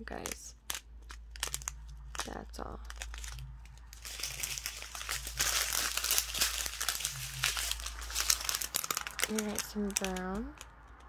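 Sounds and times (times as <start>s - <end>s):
plastic packets crinkling: 0.0s - 11.0s.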